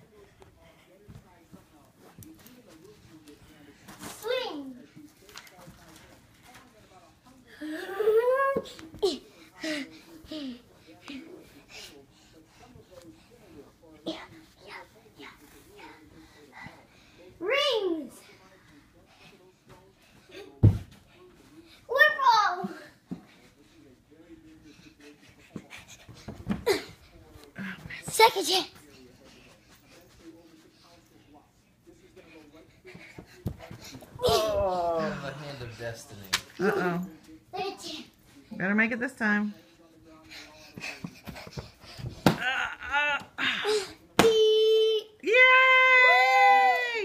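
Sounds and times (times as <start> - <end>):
faint indistinct voices: 0.0 - 47.0.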